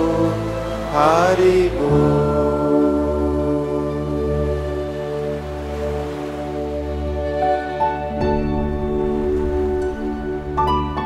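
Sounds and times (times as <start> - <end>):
musical drone: 0.0 - 11.0.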